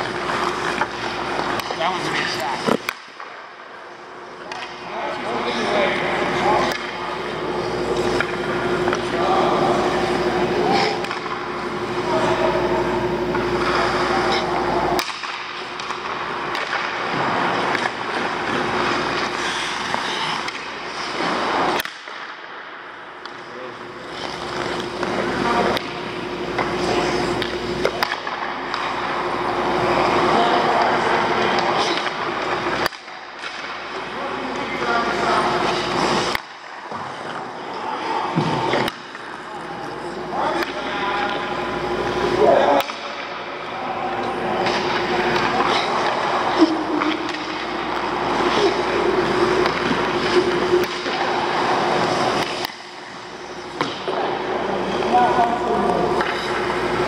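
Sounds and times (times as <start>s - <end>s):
skates scraping on ice: 0.0s - 3.0s, 16.5s - 21.9s, 24.0s - 25.8s, 29.8s - 40.2s.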